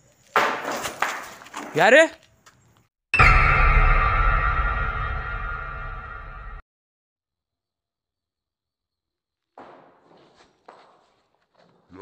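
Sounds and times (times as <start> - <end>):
footsteps: 9.6 - 12.0.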